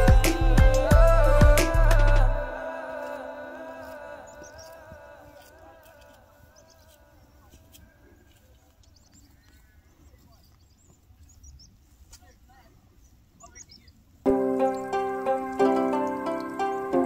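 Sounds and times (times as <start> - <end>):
background music: 0.0 - 4.3, 14.3 - 17.0.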